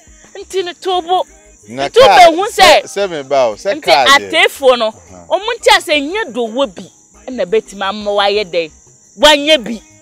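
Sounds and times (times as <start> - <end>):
crickets chirring: 0.0 - 10.0
woman talking: 0.4 - 1.2, 2.0 - 2.8, 3.8 - 9.8.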